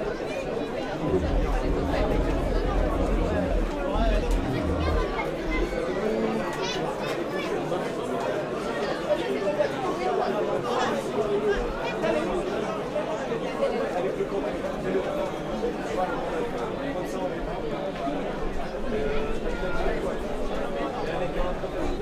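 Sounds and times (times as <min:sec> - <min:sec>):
crowd chatter: 0:00.0 - 0:22.0
low rumble: 0:01.0 - 0:06.1.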